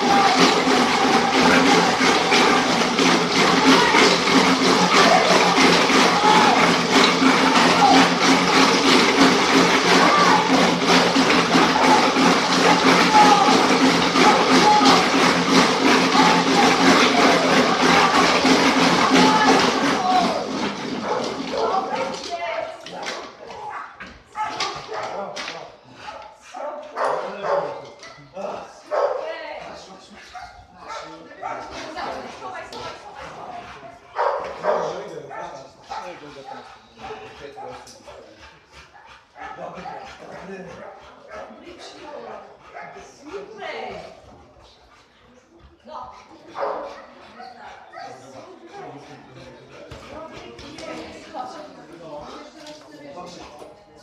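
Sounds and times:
wooden slat treadmill running: 0.0 - 53.8
crowd voices: 0.0 - 54.0
dog yips: 46.6 - 48.2.

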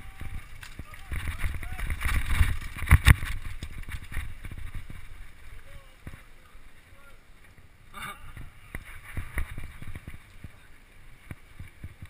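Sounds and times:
bike rattling over dirt trail: 0.0 - 12.0
wind rumble on microphone: 0.0 - 12.0.

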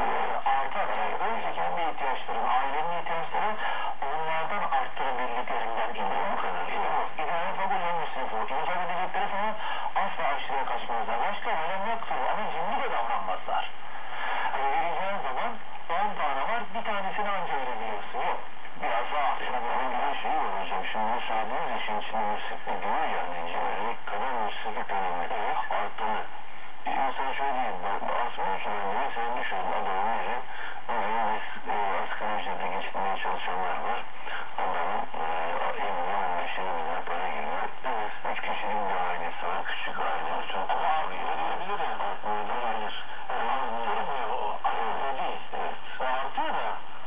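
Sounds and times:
voice on am radio: 0.0 - 47.0.

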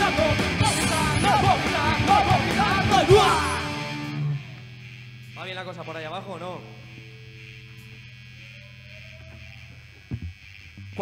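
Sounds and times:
amplifiers humming and buzzing: 0.0 - 11.0.

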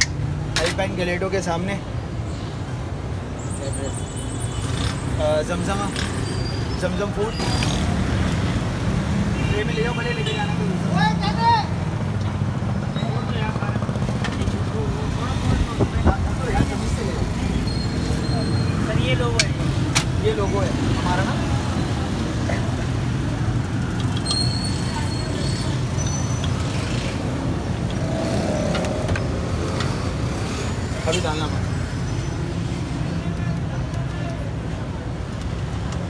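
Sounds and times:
traffic rumble: 0.0 - 36.0.

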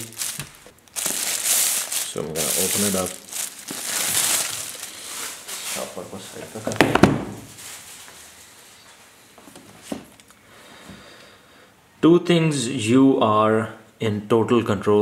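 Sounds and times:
plastic bag crinkling: 0.0 - 8.7
box knocking on table: 6.8 - 7.4.

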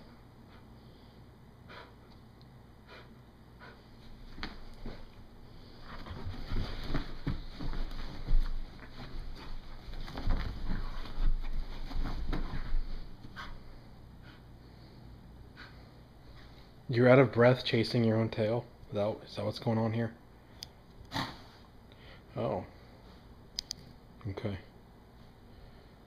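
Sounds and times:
rustling of dog bed: 4.0 - 13.9.

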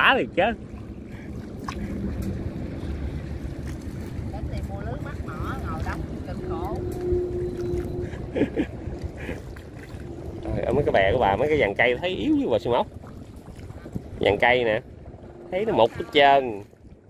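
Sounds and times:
water splashing around boat: 0.0 - 17.0
wind noise on microphone: 1.1 - 17.0
person laughing: 8.1 - 9.4.

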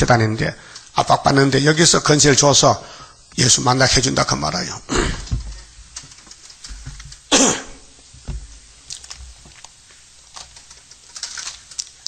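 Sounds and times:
low room rumble: 3.9 - 12.0
loud cough: 7.3 - 7.9.

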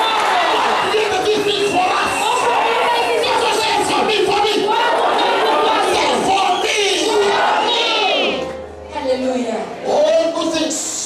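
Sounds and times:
congregation shouting: 0.0 - 8.8.

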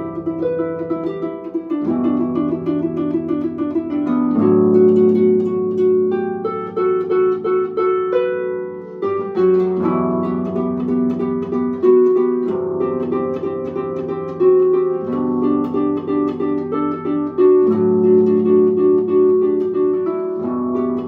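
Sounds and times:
harp playing: 0.0 - 21.0.

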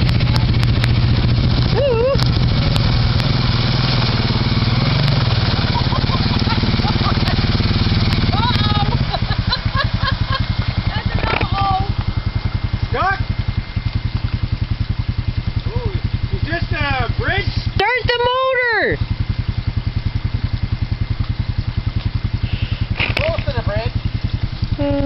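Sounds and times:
atv engine idling: 0.0 - 25.0
voices calling out: 1.5 - 25.0.

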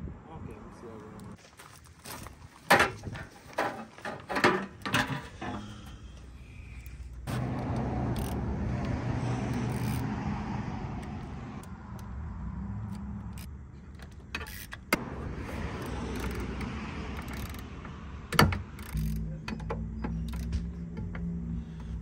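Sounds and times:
ratchet clicking on metal: 6.9 - 10.2, 12.8 - 15.0, 15.7 - 22.0.

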